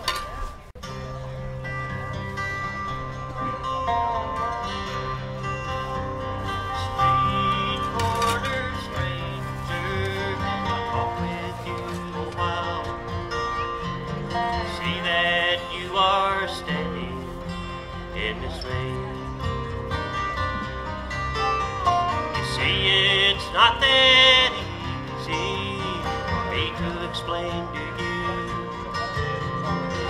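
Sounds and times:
acoustic bluegrass band playing: 0:00.0 - 0:30.0.

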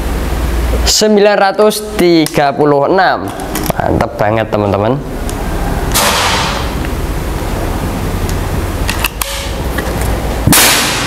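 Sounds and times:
air rifle shot crack: 0:05.9 - 0:06.8, 0:10.5 - 0:11.0
sharp burst: 0:05.9 - 0:06.8, 0:10.5 - 0:11.0.

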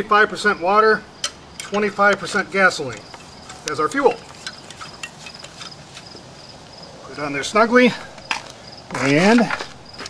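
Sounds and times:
insect chirping: 0:00.0 - 0:10.0.

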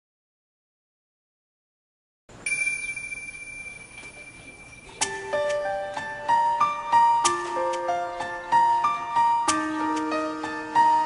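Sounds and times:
high bell-like chime ringing: 0:02.4 - 0:05.5.

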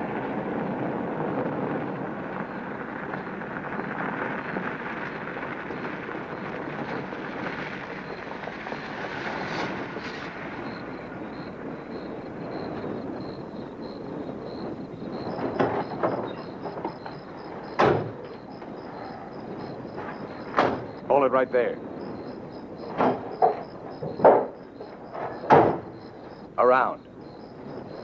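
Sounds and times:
sharp knocks: 0:15.3 - 0:18.4, 0:20.0 - 0:21.0, 0:22.9 - 0:26.0.

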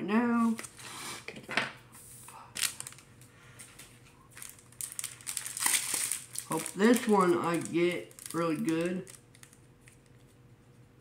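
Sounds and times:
foil wrapper crinkling: 0:02.5 - 0:03.1, 0:04.3 - 0:10.4.

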